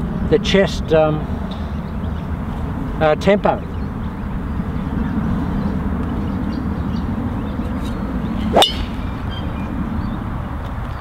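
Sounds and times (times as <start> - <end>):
golf club striking ball: 7.8 - 9.5.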